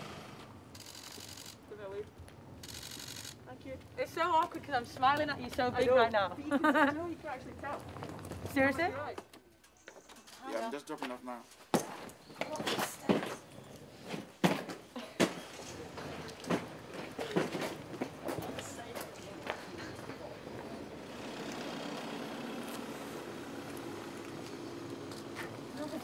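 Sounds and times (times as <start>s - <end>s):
footsteps: 1.0s - 20.8s
luggage being carried and wheeled: 3.6s - 9.4s, 11.7s - 21.0s.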